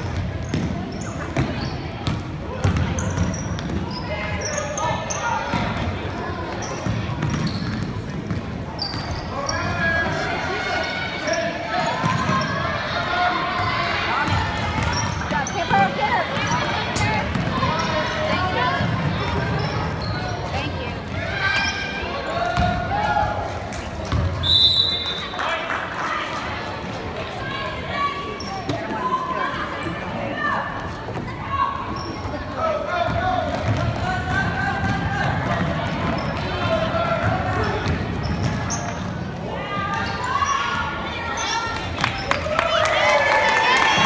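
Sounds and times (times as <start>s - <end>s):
referee's whistle: 24.4s - 25.4s.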